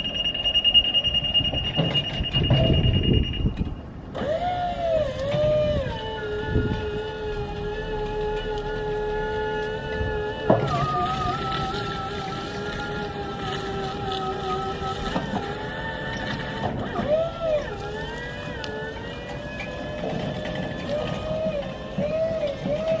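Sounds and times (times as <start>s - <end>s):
electric motor whining: 2.9s - 23.0s.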